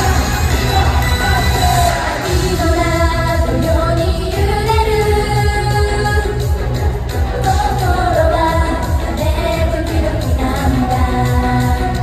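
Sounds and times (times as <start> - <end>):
female voices singing pop song: 0.0 - 12.0.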